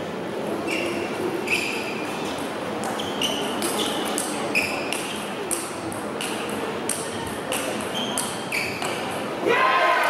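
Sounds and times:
table tennis ball pinging: 0:04.1 - 0:09.2.

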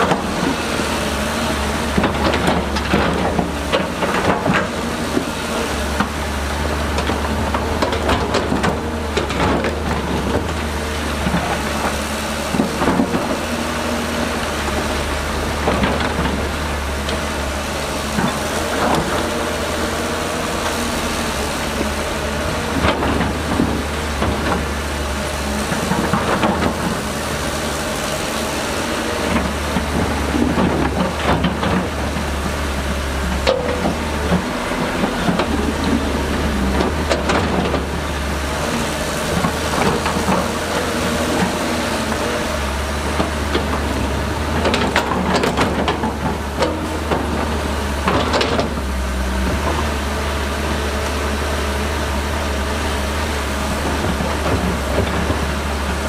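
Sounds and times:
excavator diesel engine under load: 0:00.0 - 0:56.0.

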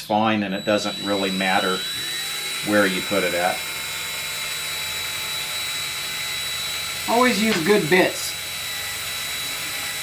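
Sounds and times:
cordless drill drilling metal: 0:00.1 - 0:10.0.

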